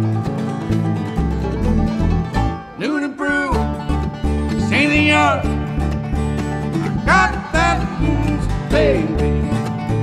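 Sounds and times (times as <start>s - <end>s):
bluegrass band playing: 0.0s - 10.0s.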